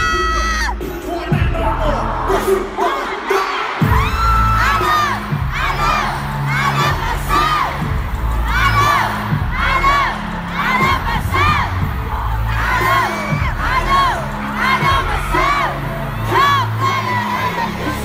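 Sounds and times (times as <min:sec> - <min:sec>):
deep bass notes of music: 0:00.0 - 0:02.8, 0:03.8 - 0:18.0
crowd screaming and cheering: 0:00.0 - 0:18.0.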